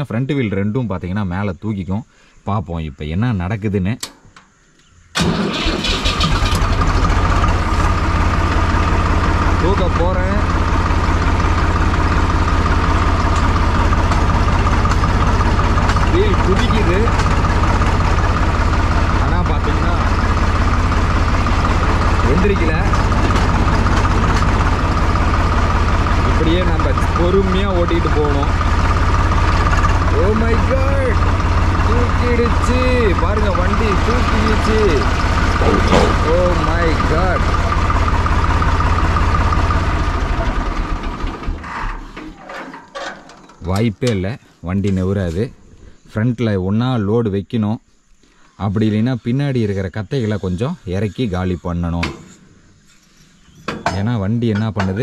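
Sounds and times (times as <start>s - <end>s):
tractor diesel engine running: 5.2s - 45.5s.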